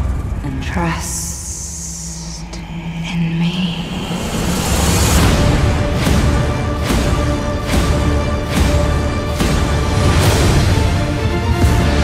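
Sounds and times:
low sustained drone: 0.0 - 12.0.

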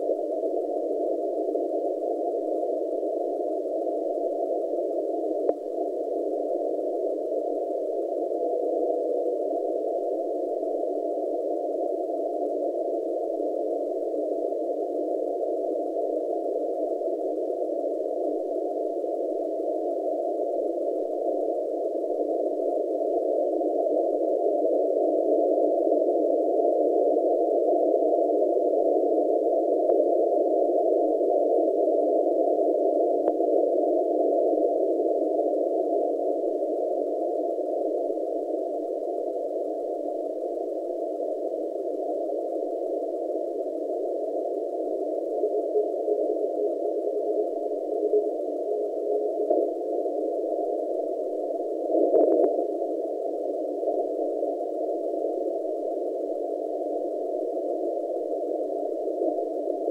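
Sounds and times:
faint tone: 0.0 - 24.0
radio static hiss: 0.0 - 59.9.

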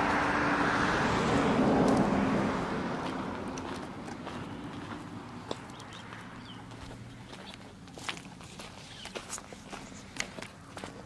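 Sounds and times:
car driving past: 0.0 - 7.4.

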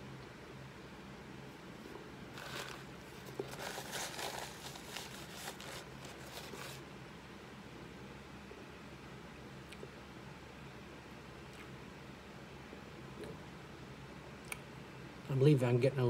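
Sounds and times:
paper napkin rustling: 2.3 - 6.9.

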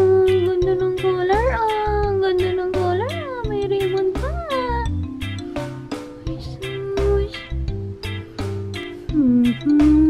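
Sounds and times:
background music with low beat: 0.0 - 10.0.

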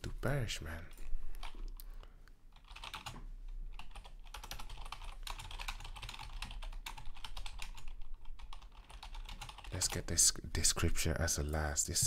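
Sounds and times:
typing on computer keyboard: 2.6 - 3.2, 3.8 - 9.8.

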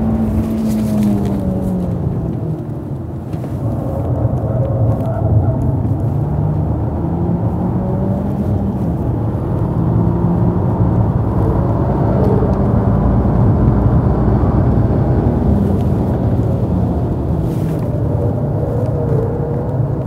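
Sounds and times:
car engine while driving: 0.0 - 20.0
road noise: 0.0 - 20.0.

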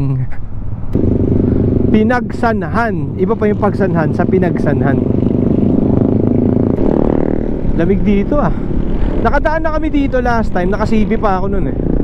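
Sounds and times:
road and wind noise: 0.0 - 12.0
steady engine drone: 0.0 - 12.0
motorcycle engine running: 1.0 - 12.0.

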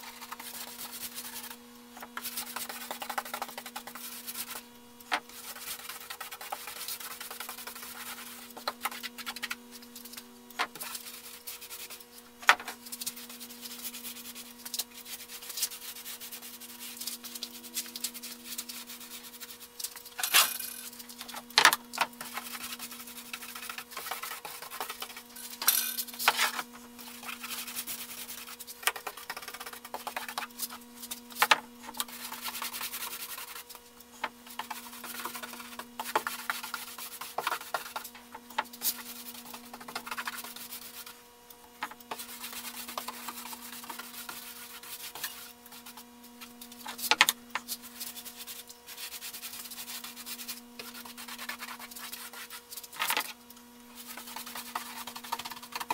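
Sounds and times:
steady low hum: 0.0 - 55.9.

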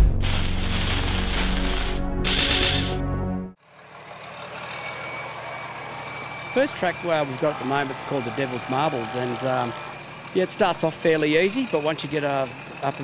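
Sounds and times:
off-road vehicle engine running: 3.6 - 13.0.

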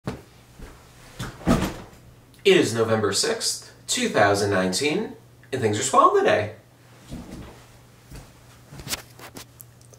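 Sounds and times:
office chair thumps and knocks: 0.1 - 2.0.

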